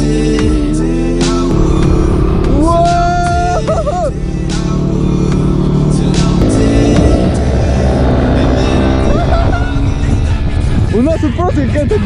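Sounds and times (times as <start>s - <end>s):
background music: 0.0s - 12.0s
dirt bike engine: 1.5s - 11.0s.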